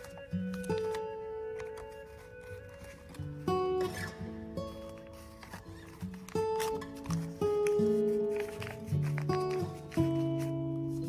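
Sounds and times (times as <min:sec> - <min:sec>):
instrumental background music: 0:00.0 - 0:11.0.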